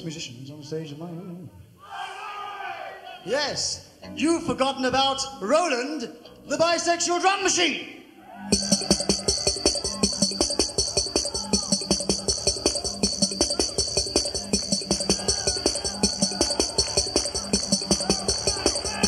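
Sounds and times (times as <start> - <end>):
drum machine hi-hat ticks: 8.5 - 19.0
drum machine kick and snare: 8.5 - 19.0.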